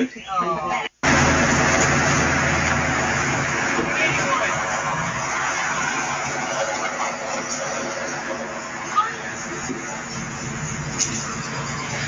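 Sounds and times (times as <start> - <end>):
pickup truck driving past: 1.0 - 12.0.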